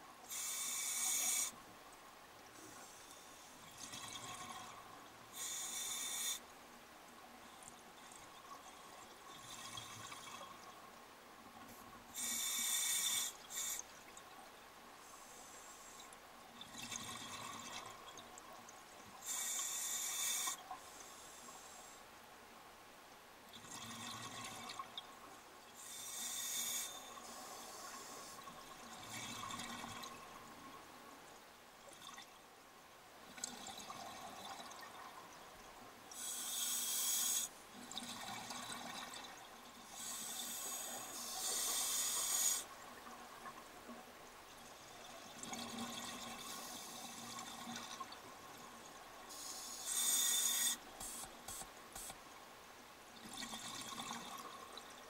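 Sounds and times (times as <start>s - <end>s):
regulator inhale hiss: 0.2s - 1.6s, 5.3s - 6.4s, 12.1s - 13.9s, 19.2s - 22.0s, 25.8s - 28.5s, 36.1s - 37.6s, 39.9s - 42.7s, 49.3s - 52.2s.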